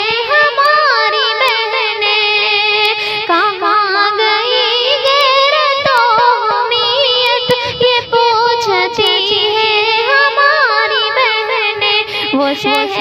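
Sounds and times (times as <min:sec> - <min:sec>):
high voice singing ornamented lines: 0:00.0 - 0:13.0.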